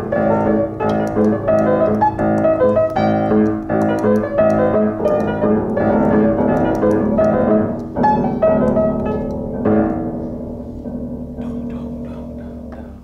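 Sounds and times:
upright piano chords and notes: 0:00.0 - 0:13.0.

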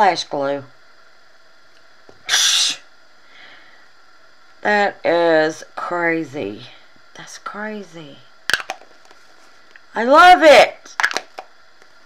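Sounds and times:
sharp puff of breath: 0:02.2 - 0:03.9.

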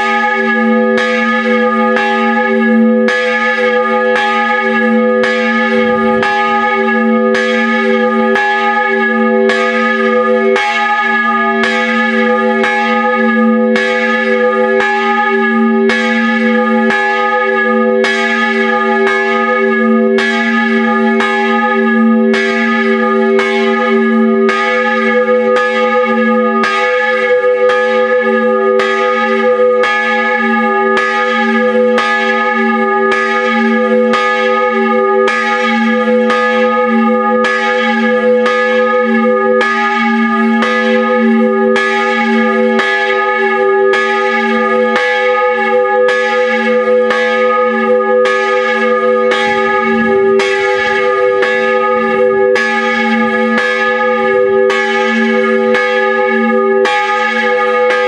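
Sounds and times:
large church bell ringing: 0:00.0 - 0:58.0.

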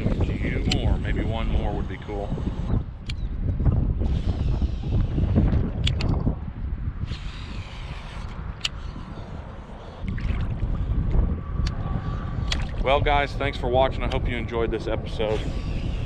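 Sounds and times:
gusty wind buffeting microphone: 0:00.0 - 0:16.0.

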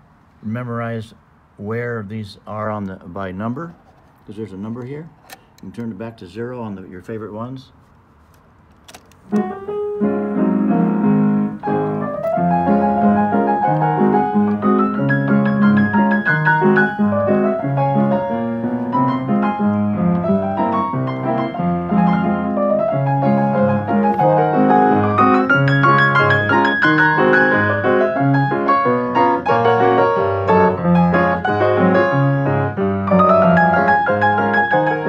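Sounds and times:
player piano playing a tune: 0:09.3 - 0:35.0.

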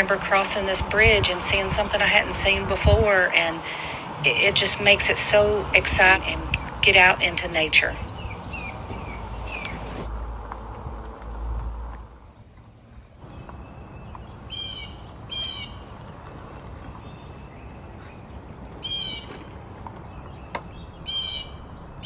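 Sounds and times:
bird calls: 0:00.0 - 0:10.1, 0:13.2 - 0:22.0
insects chorus: 0:00.0 - 0:12.2, 0:13.2 - 0:22.0.

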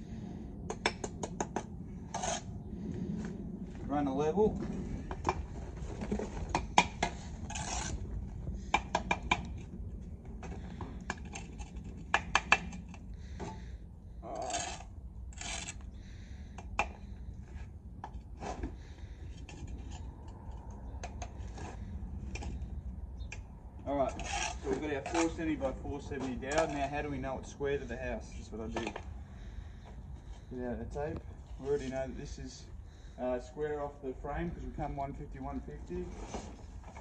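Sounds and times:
taps and knocks on bricks: 0:00.7 - 0:01.7, 0:06.1 - 0:07.2, 0:08.6 - 0:09.7, 0:10.4 - 0:13.6
spirit level scraping on bricks: 0:01.3 - 0:02.5, 0:04.6 - 0:09.7, 0:10.4 - 0:22.7, 0:24.0 - 0:29.0, 0:35.9 - 0:37.0.

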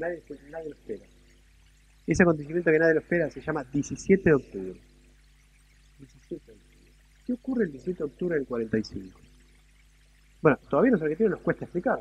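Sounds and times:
quiet voice sounds: 0:00.0 - 0:01.0, 0:07.3 - 0:09.1
faint low hum: 0:00.0 - 0:12.0.

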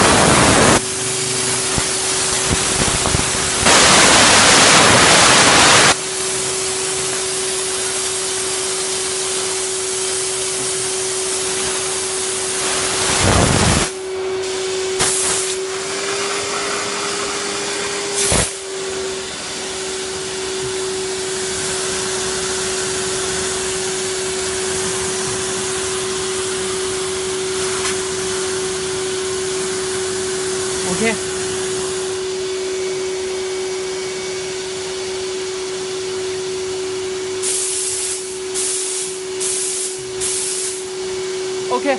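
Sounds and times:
vacuum noise spikes: 0:00.0 - 0:41.7
vacuum cleaner running: 0:00.0 - 0:41.9.

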